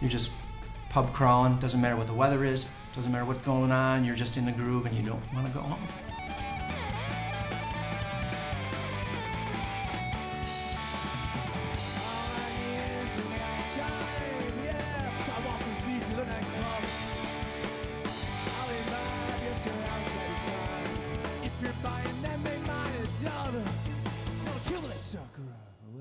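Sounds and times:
guitars strumming: 0.0s - 25.2s
live rock band playing: 5.2s - 25.0s.

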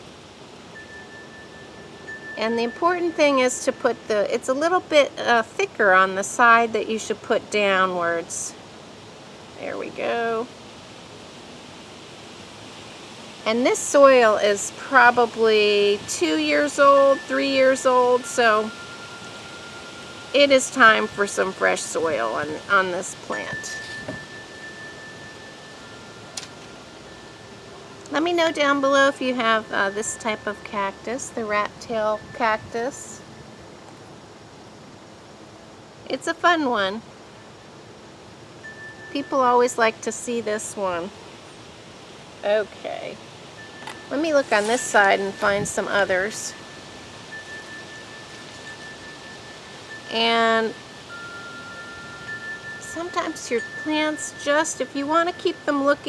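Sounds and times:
wind chimes ringing: 0.0s - 7.0s, 12.4s - 35.6s, 36.3s - 42.2s, 43.1s - 56.0s
outdoor background hiss: 0.0s - 56.0s.

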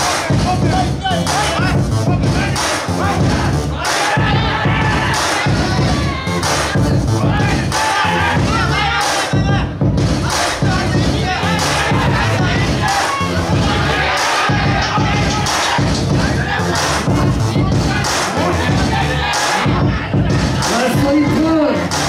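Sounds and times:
crowd shouting and cheering: 0.0s - 22.0s
music with steady beat: 0.0s - 22.0s.

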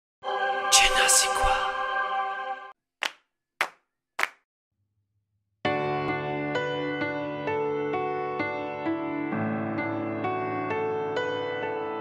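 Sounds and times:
sharp hand claps: 3.0s - 4.4s.

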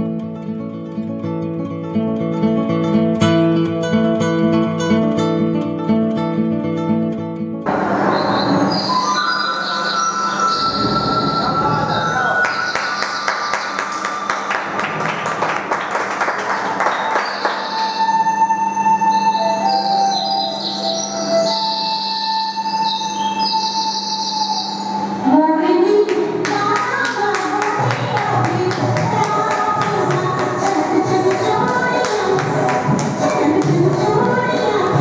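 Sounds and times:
guitar music: 0.0s - 11.9s, 26.2s - 35.0s
noisy wash with held tones: 7.6s - 35.0s.

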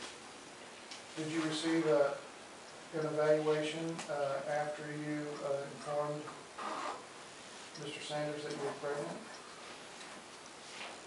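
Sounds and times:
person speaking: 1.2s - 2.3s, 2.9s - 6.8s, 7.7s - 9.5s.

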